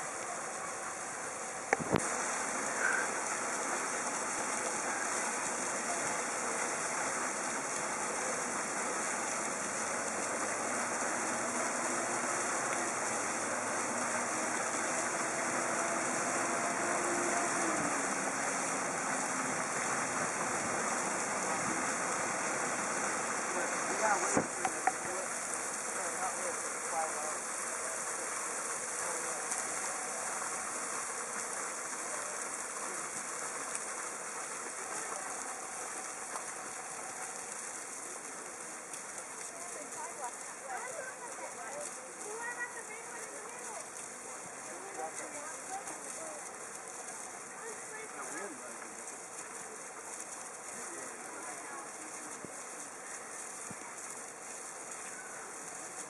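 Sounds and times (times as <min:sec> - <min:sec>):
water jets splashing onto rocks: 0:00.0 - 0:56.0.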